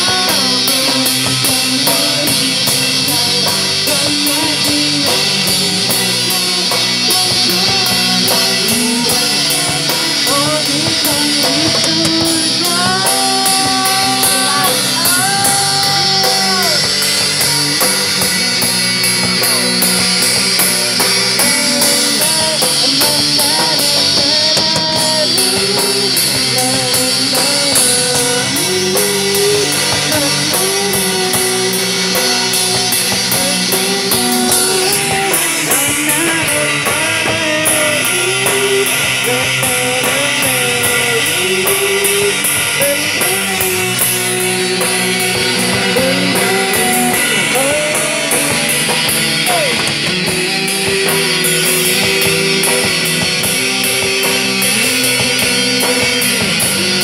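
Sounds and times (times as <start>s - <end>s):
cymbals keeping a beat: 0.0s - 57.0s
rock band playing: 0.0s - 57.0s.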